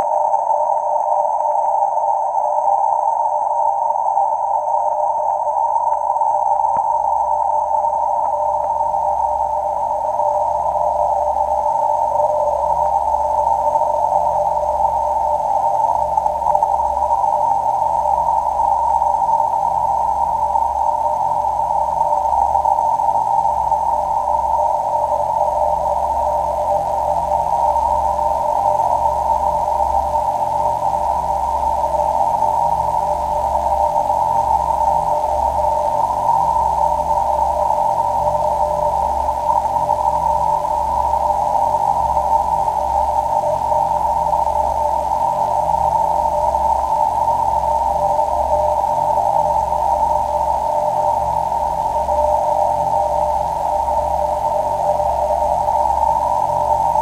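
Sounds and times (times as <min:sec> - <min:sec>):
dense filtered noise drone: 0:00.0 - 0:57.0.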